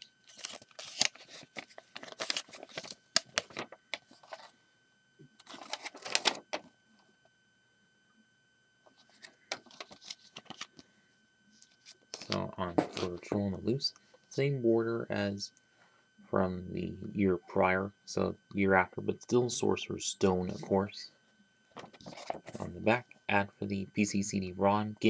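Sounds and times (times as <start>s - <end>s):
paper rustling and crackling: 0.0s - 4.5s, 5.4s - 6.7s, 8.9s - 10.8s, 21.7s - 22.7s.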